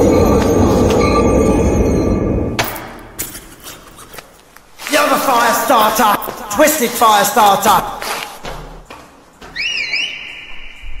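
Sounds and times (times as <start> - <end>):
high whistle-like tone: 9.6 - 11.0.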